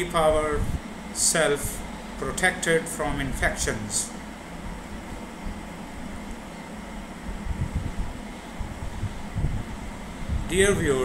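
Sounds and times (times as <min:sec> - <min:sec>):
fan-like hum: 0:00.0 - 0:11.0.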